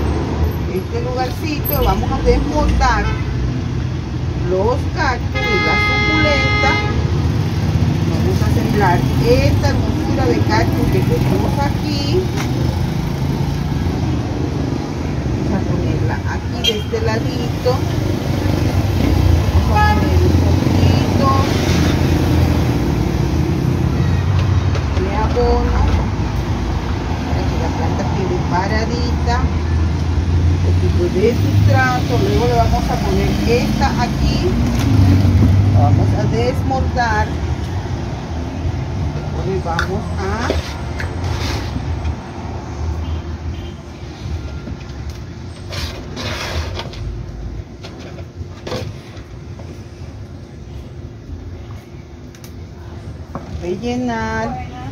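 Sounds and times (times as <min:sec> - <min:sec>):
vehicle engine rumbling: 0:00.0 - 0:54.9.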